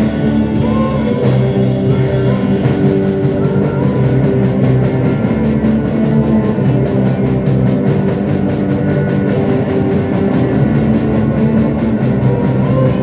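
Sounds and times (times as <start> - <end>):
drum kit beat: 0.0 - 13.0
guitars: 0.0 - 13.0
rock band playing: 0.0 - 13.0.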